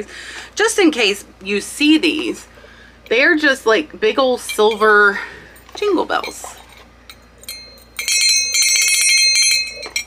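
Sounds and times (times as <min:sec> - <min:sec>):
jingle bell shaken by hand: 0:07.4 - 0:10.0.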